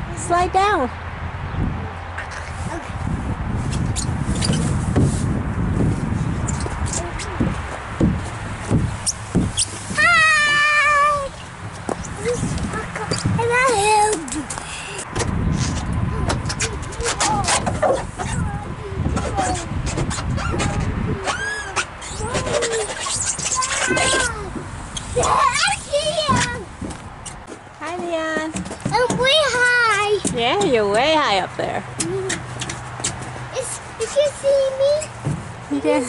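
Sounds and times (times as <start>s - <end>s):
child short falling call: 10.0s - 11.3s
child squealing: 10.0s - 11.3s, 20.4s - 24.5s
rubbing rumble in plastic slide: 15.5s - 27.0s.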